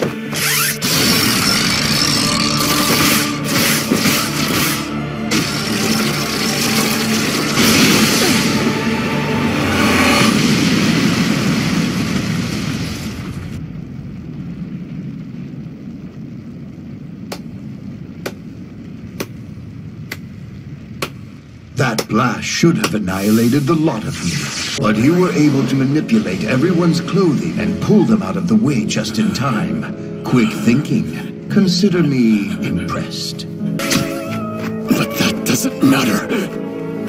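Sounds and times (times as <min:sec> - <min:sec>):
cartoon blast rumble: 0:00.4 - 0:03.4.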